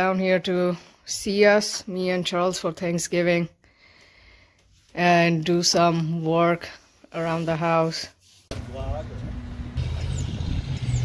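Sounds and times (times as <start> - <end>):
vehicle engine humming: 8.5 - 11.0.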